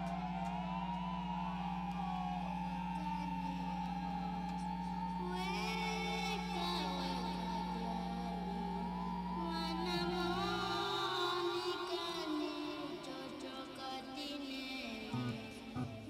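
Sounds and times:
low drone: 0.0 - 13.2.

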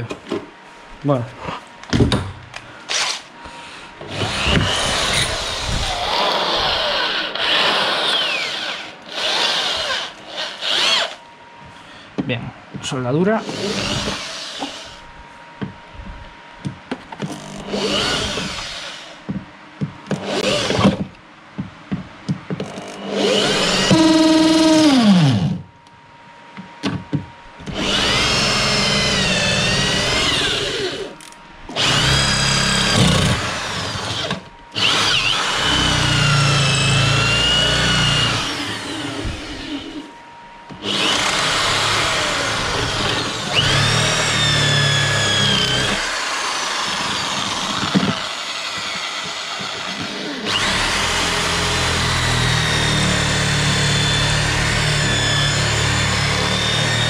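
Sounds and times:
electric drill boring metal: 4.1 - 11.2, 13.4 - 15.0, 17.4 - 19.2, 20.2 - 21.0, 22.6 - 25.6, 27.7 - 40.1, 40.8 - 57.0.

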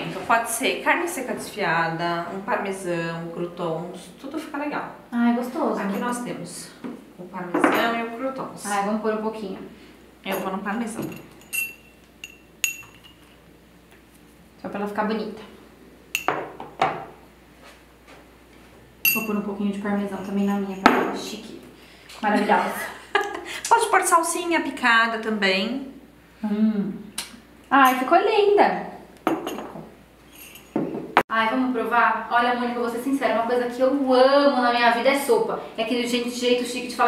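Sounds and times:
porcelain bowls clinking: 10.3 - 13.4, 16.1 - 16.6, 19.0 - 19.4, 29.3 - 31.0.

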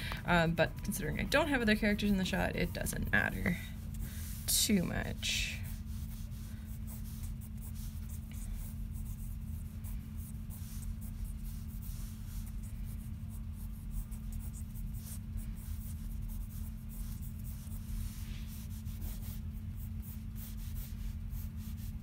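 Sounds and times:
steady low hum: 0.0 - 22.0
pencil scratching on paper: 1.8 - 22.0.

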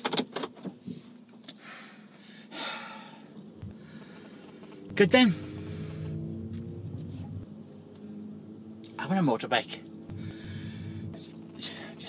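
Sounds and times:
person breathing: 1.5 - 4.6, 5.3 - 6.3, 10.1 - 11.8.

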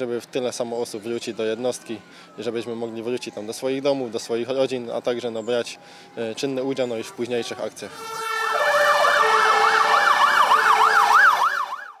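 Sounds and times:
fire engine sirens yelping: 0.0 - 12.0
steady siren tones: 6.4 - 12.0.

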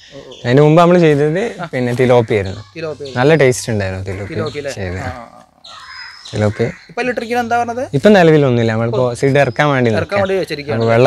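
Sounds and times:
man talking: 0.0 - 5.6, 6.3 - 11.0.

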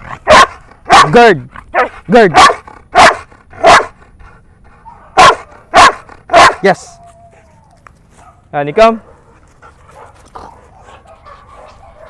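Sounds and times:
dog barking sharply: 0.2 - 1.2, 1.8 - 3.9, 4.9 - 6.7.

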